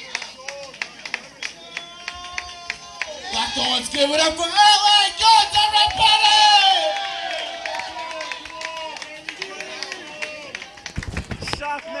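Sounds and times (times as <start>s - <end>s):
scattered clapping: 0.0s - 12.0s
audience cheering and shouting: 1.6s - 12.0s.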